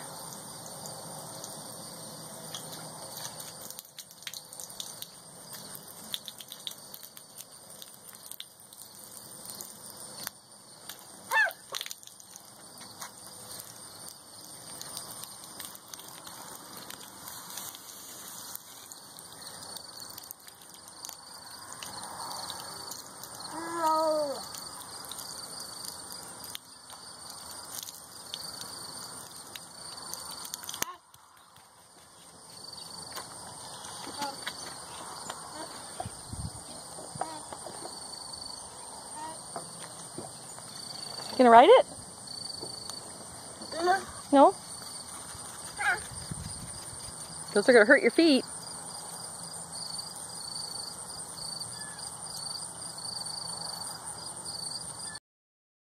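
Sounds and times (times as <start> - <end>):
hose water splashing on concrete: 0.0 - 55.0
insects trilling: 0.0 - 55.2.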